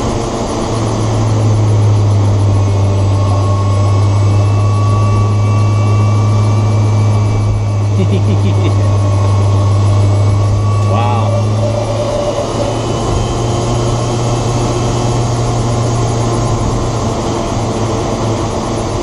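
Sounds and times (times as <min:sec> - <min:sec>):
low cabin hum: 0:00.0 - 0:18.3
high electric whine: 0:00.0 - 0:19.0
road noise: 0:00.0 - 0:19.0.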